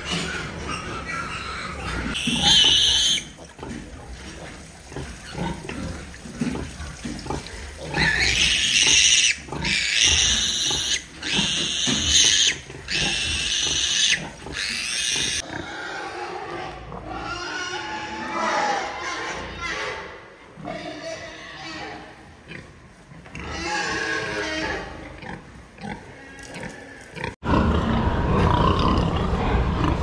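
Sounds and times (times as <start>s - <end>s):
piglets squealing: 0.0s - 3.4s, 7.9s - 20.0s
pigs grunting: 0.0s - 30.0s.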